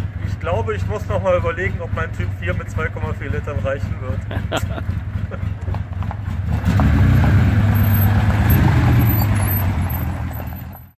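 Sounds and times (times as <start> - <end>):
car engine running: 0.0 - 10.9.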